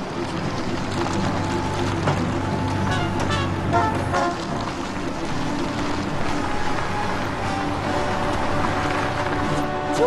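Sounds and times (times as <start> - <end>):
background music: 0.0 - 10.0
car and truck engines passing: 0.0 - 10.0.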